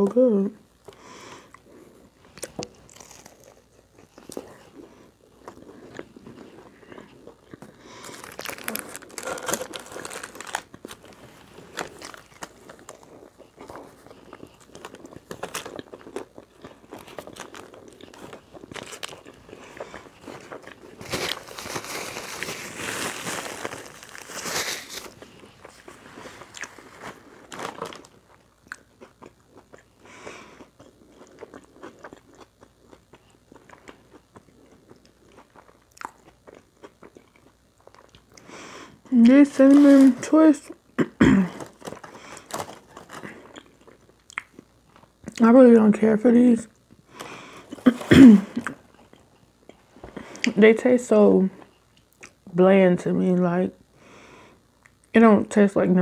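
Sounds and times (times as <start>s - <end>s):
person chewing with crunching: 0.8s - 45.5s, 46.8s - 50.6s, 51.6s - 52.5s.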